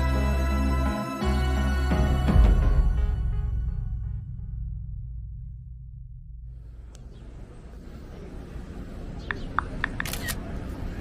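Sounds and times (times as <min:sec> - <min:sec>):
low rumble: 0:02.9 - 0:08.4
small birds chirping: 0:07.0 - 0:10.0.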